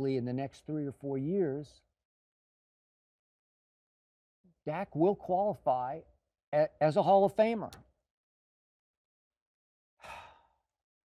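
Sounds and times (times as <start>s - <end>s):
man sighing: 10.0s - 10.6s.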